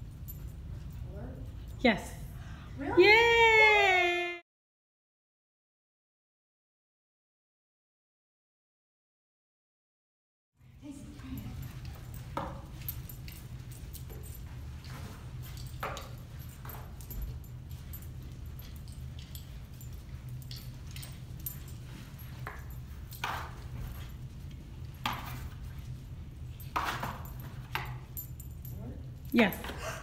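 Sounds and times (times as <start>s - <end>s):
harness and leash jingling: 0.0s - 2.3s, 10.7s - 30.0s
low room hum: 0.0s - 4.4s, 10.6s - 30.0s.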